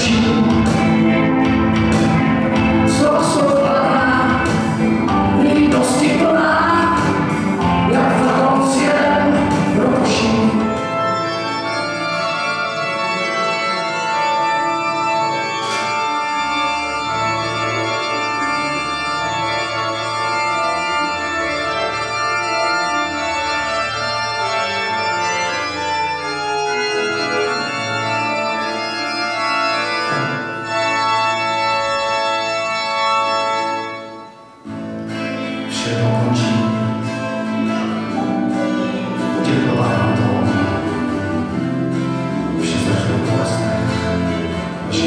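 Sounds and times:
organ chords on electronic keyboard: 0.0s - 45.0s.

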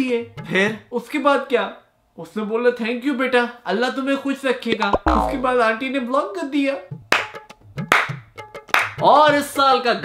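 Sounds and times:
person clapping slowly: 8.7s - 9.0s.

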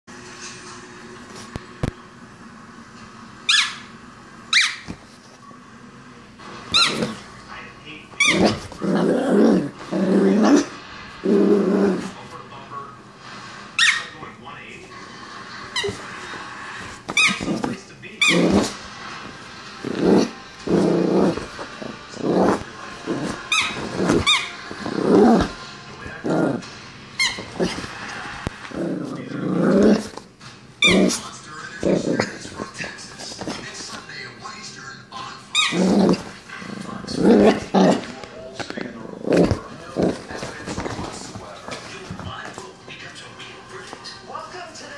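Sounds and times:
small dog yipping: 3.5s - 3.9s, 4.5s - 4.9s
small dog growling: 6.7s - 7.3s, 8.2s - 12.2s, 15.7s - 18.8s, 19.8s - 33.6s, 35.5s - 41.1s.

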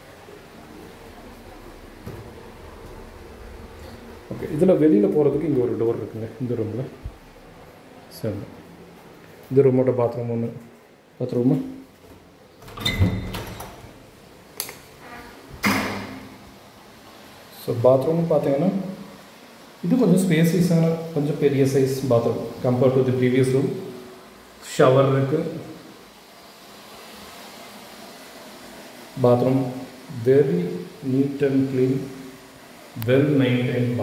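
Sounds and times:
faint hiss: 0.0s - 34.0s.

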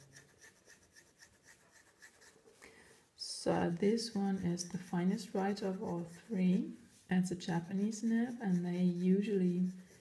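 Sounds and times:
fountain pen scratching on paper: 0.0s - 2.5s, 3.6s - 10.0s.

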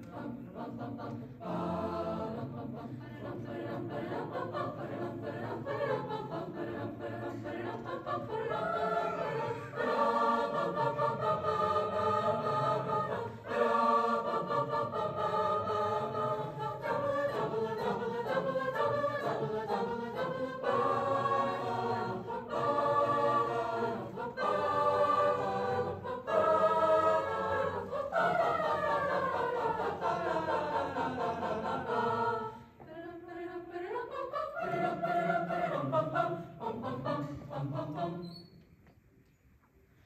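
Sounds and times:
choir singing in harmony: 0.0s - 38.9s.

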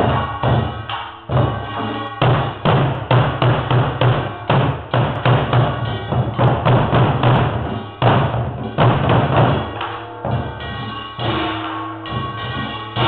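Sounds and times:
barrel drums beaten with sticks: 0.0s - 13.0s.

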